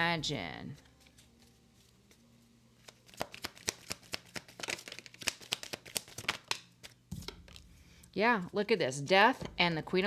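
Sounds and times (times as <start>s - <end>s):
cards being shuffled: 0.7s - 7.6s.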